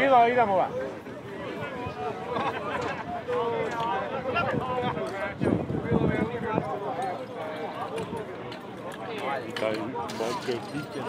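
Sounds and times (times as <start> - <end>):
people calling and talking: 0.0 - 11.0.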